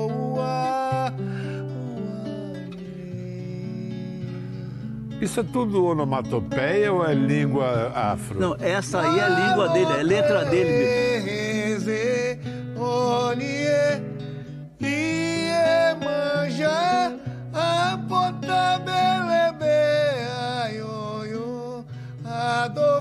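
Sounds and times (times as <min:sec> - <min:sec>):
man singing chant-like song: 0:00.0 - 0:14.2, 0:14.8 - 0:23.0
nylon-string acoustic guitar: 0:00.0 - 0:23.0.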